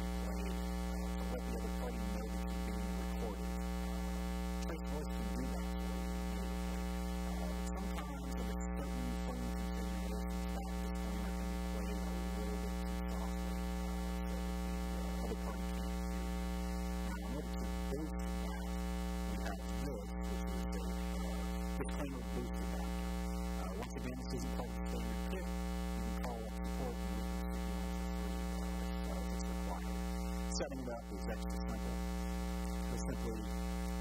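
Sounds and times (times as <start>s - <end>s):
electrical mains hum: 0.0s - 34.0s.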